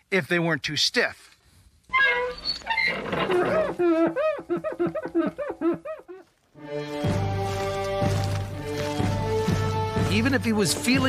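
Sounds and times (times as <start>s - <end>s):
horse whinnying: 1.9s - 4.4s.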